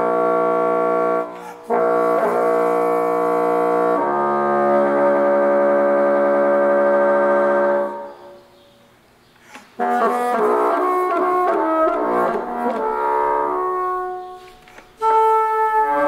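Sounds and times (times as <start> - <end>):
bassoon long notes: 0.0 - 8.5, 9.8 - 16.0.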